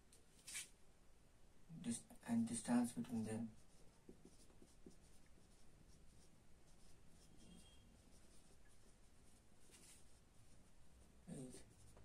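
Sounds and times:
marker scratching on whiteboard: 3.1s - 12.0s.

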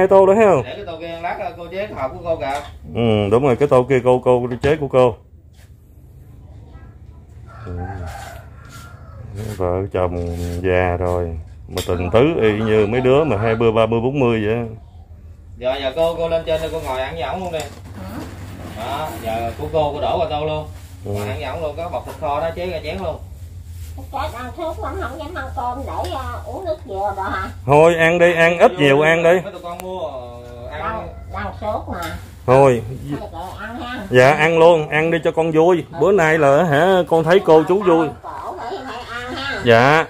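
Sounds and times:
steady low hum: 0.0s - 39.6s.

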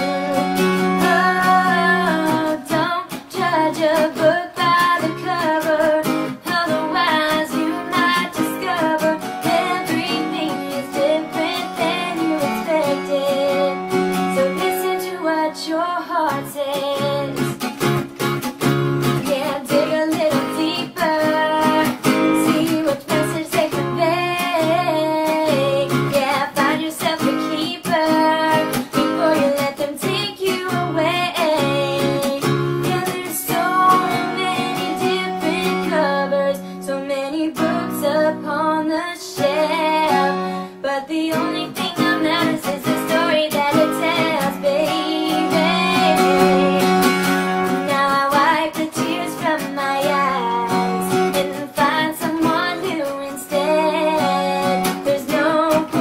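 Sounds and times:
woman singing pop song: 0.0s - 18.0s, 19.0s - 56.0s
strummed acoustic guitar: 0.0s - 56.0s.

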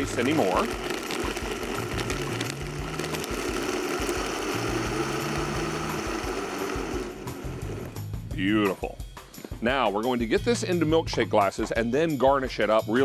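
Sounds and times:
blender running: 0.0s - 8.1s.

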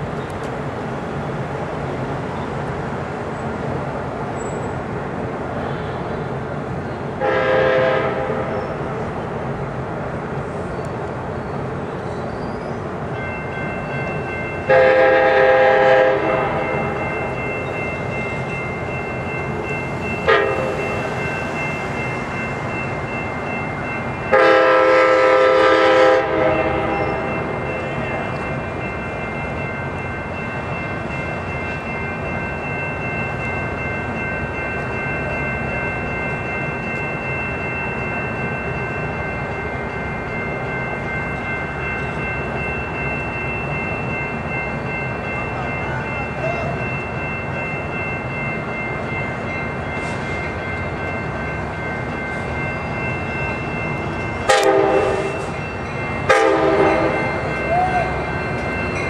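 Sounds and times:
train rumbling: 0.0s - 59.0s
train air horn blasts: 7.2s - 8.6s, 14.7s - 16.8s, 20.3s - 20.8s, 24.3s - 27.3s, 54.5s - 55.5s, 56.3s - 57.2s
bell ringing: 13.1s - 59.0s.

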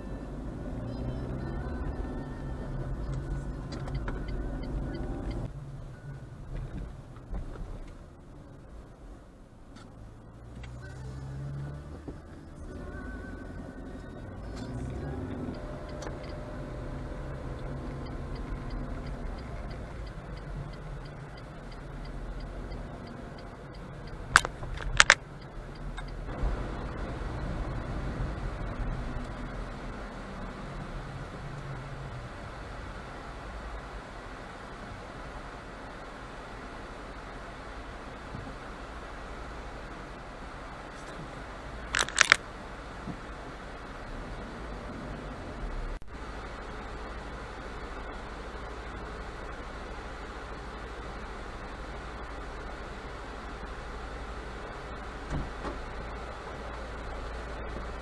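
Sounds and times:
car engine running: 0.0s - 58.0s
road noise: 0.0s - 58.0s
sharp clicks: 17.6s - 26.2s, 41.9s - 42.4s.

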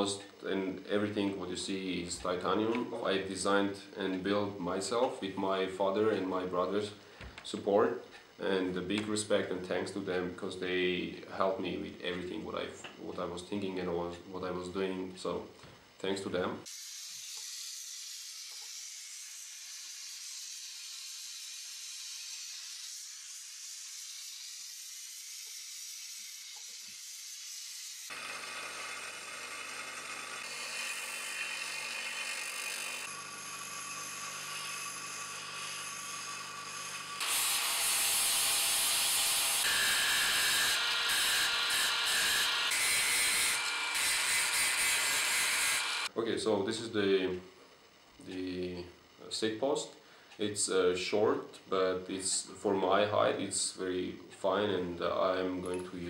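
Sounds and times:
angle grinder grinding metal: 16.6s - 46.1s
bench grinder grinding metal: 16.7s - 46.1s.

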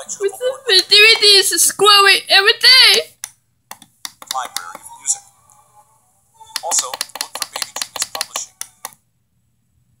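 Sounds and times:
rapid sharp clicks: 3.2s - 4.8s, 6.6s - 9.0s.

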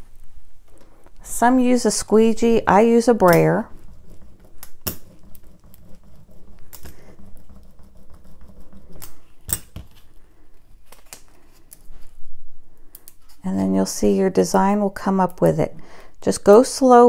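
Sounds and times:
rubber roller rumbling on tabletop: 2.2s - 10.2s
tape rustling: 3.4s - 12.2s.

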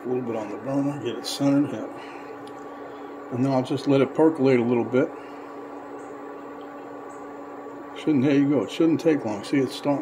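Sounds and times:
electric cooktop humming: 0.0s - 10.0s.

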